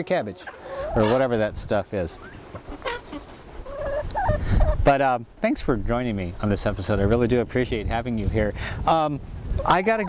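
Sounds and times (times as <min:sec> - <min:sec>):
chickens clucking: 0:00.0 - 0:07.4, 0:08.8 - 0:10.0.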